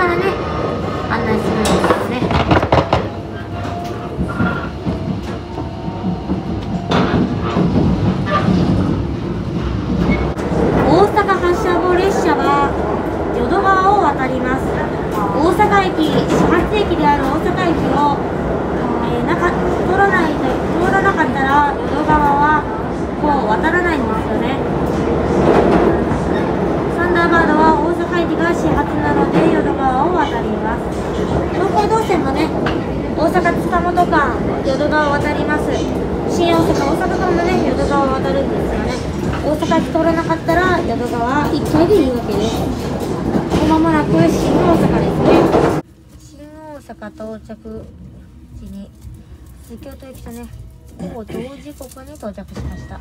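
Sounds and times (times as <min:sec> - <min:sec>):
train wheels rumbling on rails: 0:00.0 - 0:53.0.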